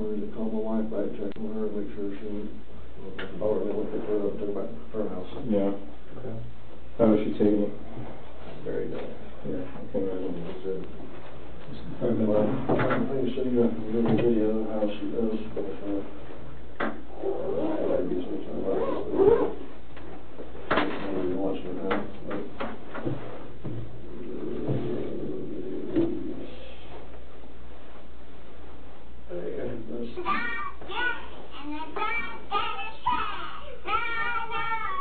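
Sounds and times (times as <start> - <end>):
muffled voices: 0.0 - 19.8, 20.4 - 23.4, 24.0 - 27.2
child singing: 30.2 - 35.0.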